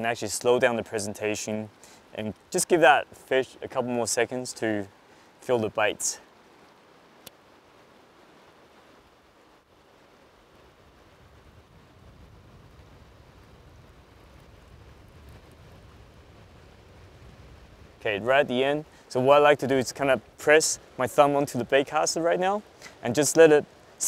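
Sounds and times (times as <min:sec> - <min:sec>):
river current rushing: 0:00.0 - 0:24.0.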